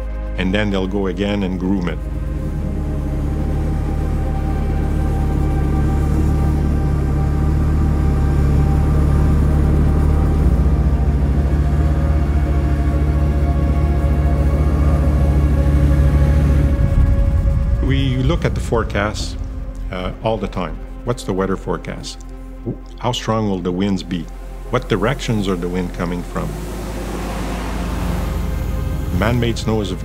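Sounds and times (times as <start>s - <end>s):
dark drone soundtrack music: 0.0s - 30.0s.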